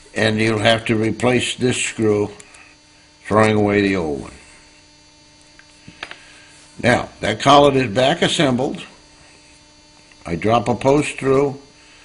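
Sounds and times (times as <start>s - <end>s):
steady mains hum: 0.0s - 12.0s.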